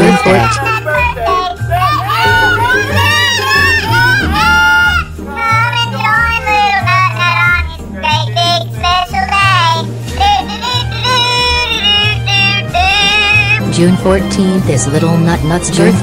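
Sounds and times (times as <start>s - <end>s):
novelty song with gliding melody: 2.1s - 5.6s.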